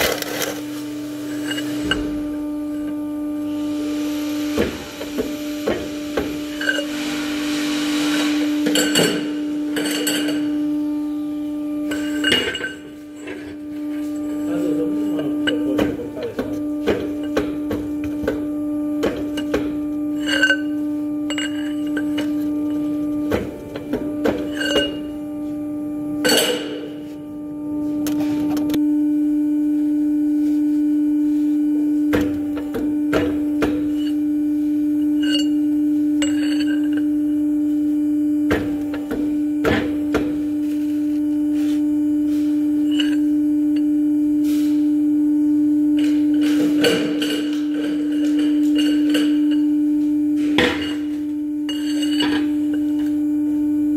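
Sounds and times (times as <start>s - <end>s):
machine hum: 0.0s - 53.9s.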